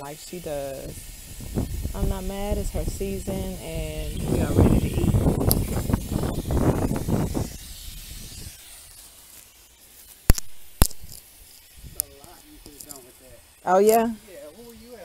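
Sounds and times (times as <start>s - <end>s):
hose spray splashing on soil: 0.0s - 15.0s.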